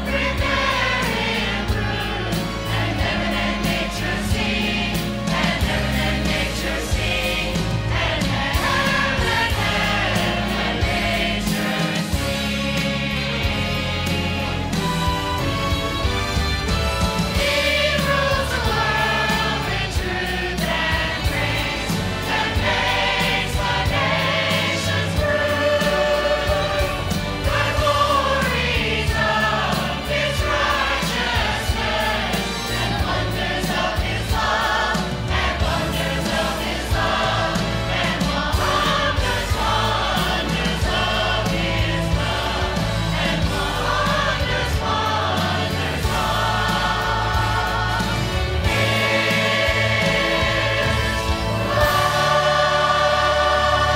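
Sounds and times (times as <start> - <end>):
choir singing: 0.0 - 53.9
instrumental accompaniment: 0.0 - 53.9.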